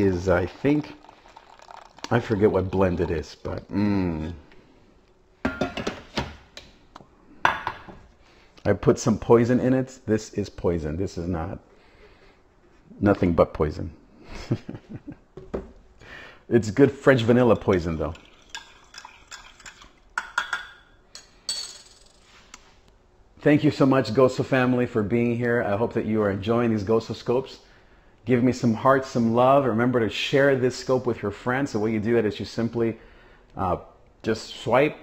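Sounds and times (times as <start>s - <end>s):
spoon clinking against mug: 17.4s - 21.9s.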